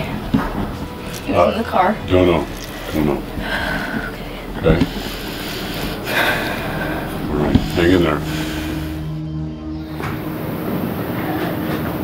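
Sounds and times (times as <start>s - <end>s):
low room hum: 0.0s - 12.0s
person breathing: 2.6s - 9.3s.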